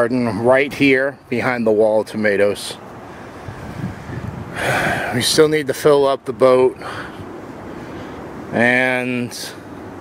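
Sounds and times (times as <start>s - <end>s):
sharp intake of breath: 3.0s - 5.2s, 6.8s - 8.4s
wind rumble on microphone: 3.3s - 5.5s.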